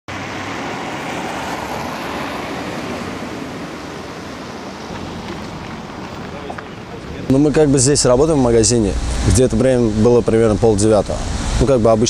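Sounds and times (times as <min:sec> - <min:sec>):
road traffic hum: 0:00.1 - 0:12.0.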